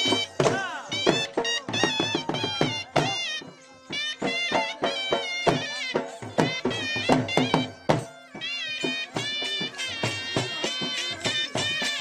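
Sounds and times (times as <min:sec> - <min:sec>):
dhol drum beats: 0:00.0 - 0:12.0
high wavering nasal melody: 0:00.0 - 0:12.0.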